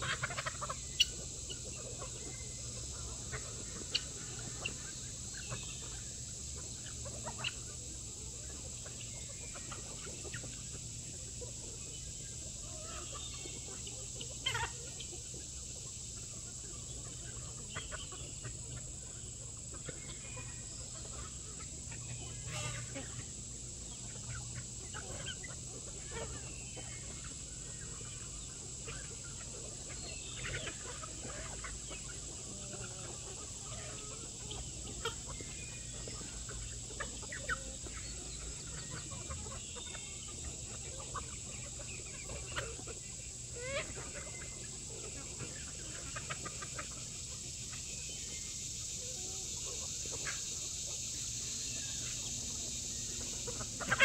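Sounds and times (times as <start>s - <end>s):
chickens clucking: 0.0s - 54.0s.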